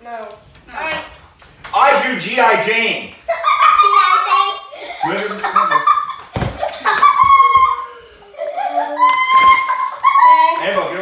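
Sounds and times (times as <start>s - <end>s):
excited voices and laughter: 1.8s - 11.0s.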